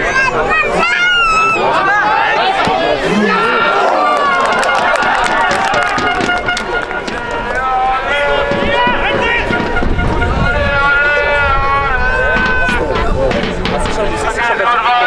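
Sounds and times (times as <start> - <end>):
voices shouting and calling: 0.0 - 15.0
sharp knocks: 4.3 - 11.0, 12.1 - 14.4.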